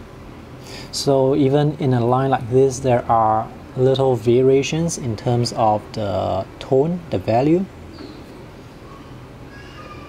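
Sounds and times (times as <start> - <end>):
faint hiss: 0.0 - 9.5.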